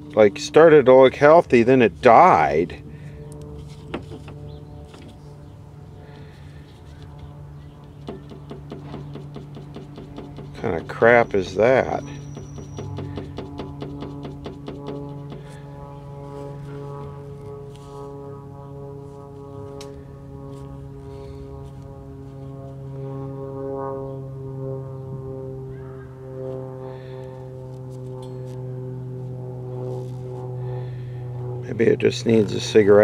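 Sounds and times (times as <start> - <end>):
transformer electrical hum: 0.0 - 33.0.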